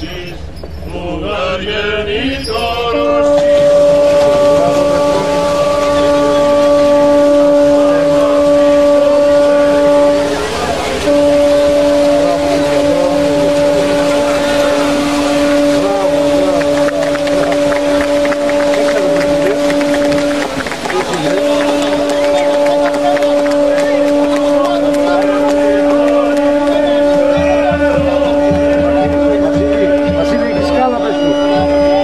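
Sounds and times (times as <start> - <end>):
crowd noise: 0.0 - 32.0
boat horn blast: 1.3 - 32.0
water splashing: 2.6 - 32.0.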